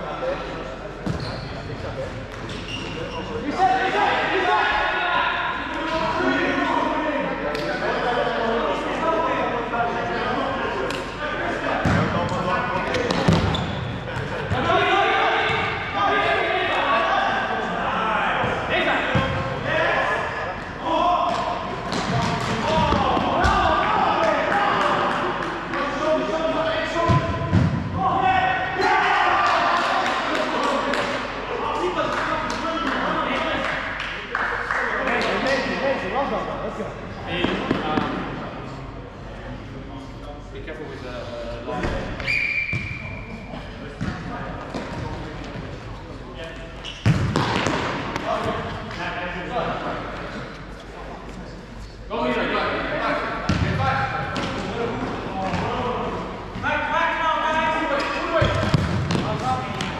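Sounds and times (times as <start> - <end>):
players shouting and calling: 0.1 - 34.0, 52.1 - 59.9.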